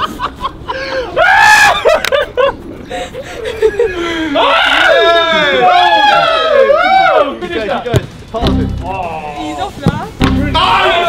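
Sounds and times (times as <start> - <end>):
young people laughing: 0.0 - 4.5.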